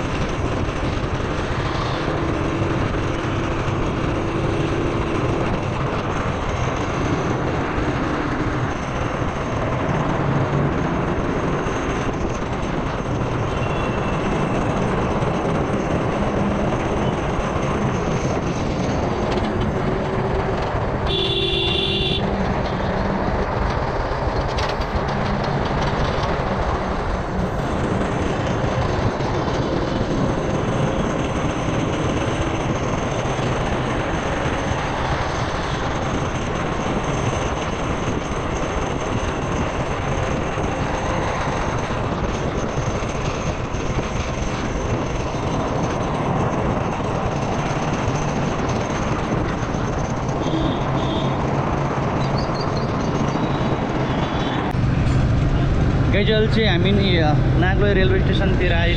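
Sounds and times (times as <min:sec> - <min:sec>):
road rumble: 0:00.0 - 0:58.9
wind rush: 0:00.0 - 0:58.9
motorcycle engine running: 0:47.0 - 0:51.4.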